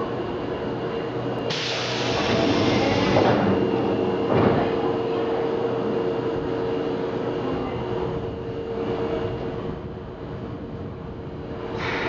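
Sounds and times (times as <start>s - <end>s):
electric train equipment humming: 0.0s - 12.0s.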